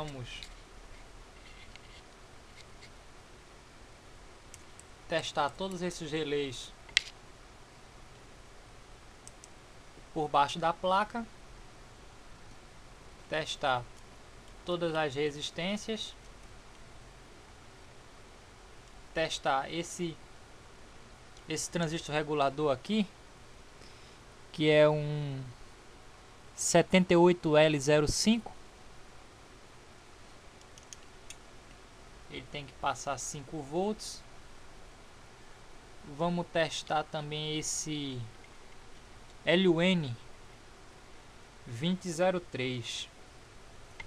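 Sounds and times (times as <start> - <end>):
low steady hiss: 0.0 - 44.0
steady low hum: 0.0 - 44.0
faint light ticks: 9.2 - 9.6.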